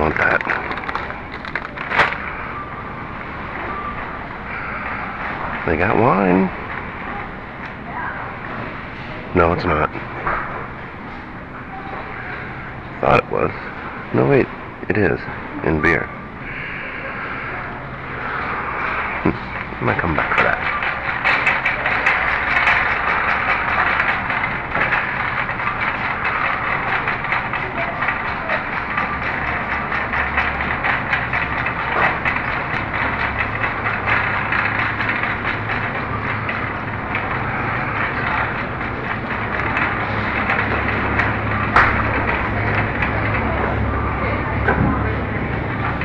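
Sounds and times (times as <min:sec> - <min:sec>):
shopping cart rattling: 0:00.0 - 0:10.8, 0:16.7 - 0:46.0.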